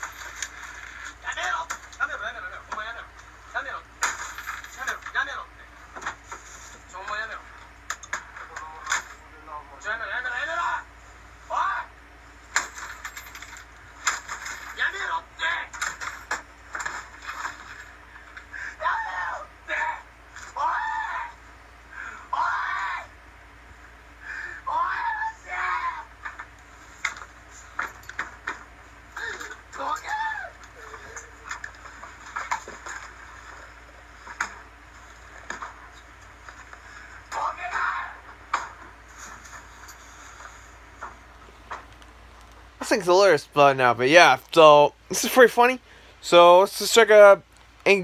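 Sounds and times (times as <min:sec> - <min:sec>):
game console being smashed: 0:04.0 - 0:05.2, 0:12.5 - 0:15.0, 0:15.7 - 0:18.0
high-pitched yelling voices: 0:18.8 - 0:21.4, 0:22.3 - 0:23.2, 0:24.6 - 0:26.2, 0:29.2 - 0:31.2, 0:37.4 - 0:38.3.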